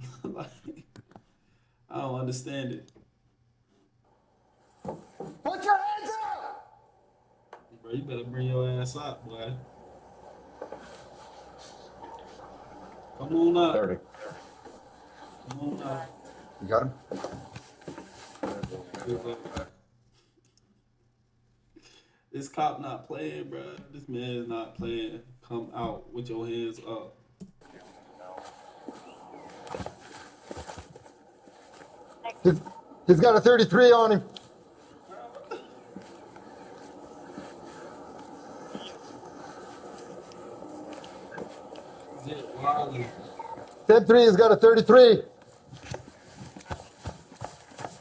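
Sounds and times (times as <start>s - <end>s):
footsteps on wooden boards: 17.0s - 19.6s, 27.7s - 32.9s, 45.5s - 48.0s
faint distant voices: 32.1s - 45.4s.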